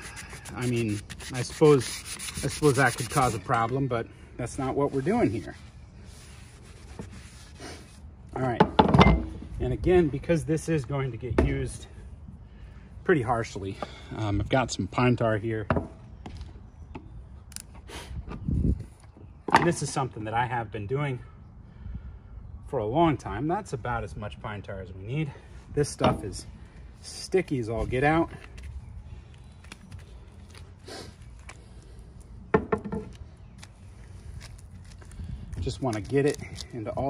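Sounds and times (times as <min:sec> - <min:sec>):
brush scraping in metal tin: 0:00.0 - 0:03.6
wooden handle knocking: 0:32.5 - 0:33.1.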